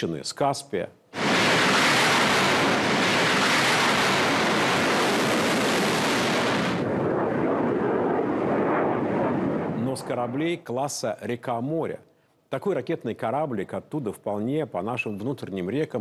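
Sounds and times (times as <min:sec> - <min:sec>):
rocket boosters rushing: 0:01.2 - 0:09.7.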